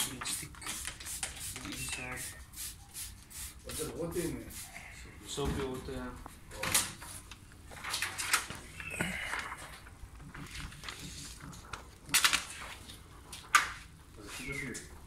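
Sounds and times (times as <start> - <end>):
spray bottle spraying: 0.0 - 4.8
plastic film rustling: 6.8 - 14.8.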